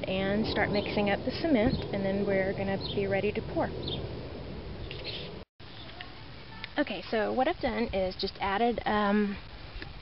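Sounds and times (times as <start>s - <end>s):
low rumble with hiss: 0.0s - 10.0s.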